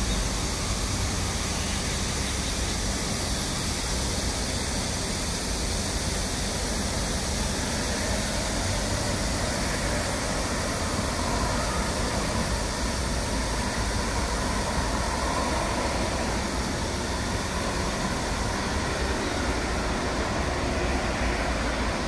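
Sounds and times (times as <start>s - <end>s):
cars and trucks passing: 7.4s - 22.0s.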